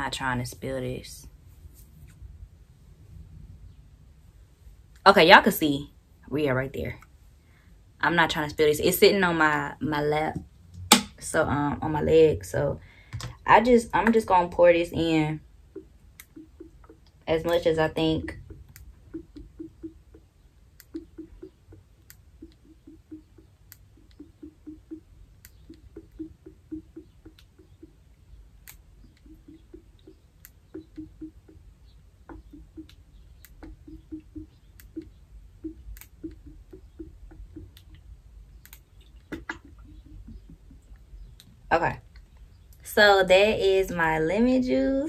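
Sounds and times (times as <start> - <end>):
small clicks: 28.6 - 31.7, 32.3 - 42.8.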